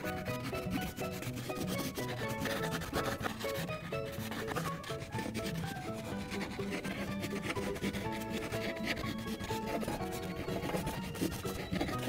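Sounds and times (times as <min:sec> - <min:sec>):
crayon scribbling on paper: 0:00.0 - 0:12.0.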